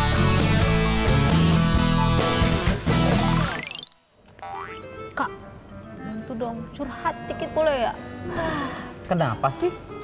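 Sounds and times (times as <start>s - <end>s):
intro music: 0.0s - 4.0s.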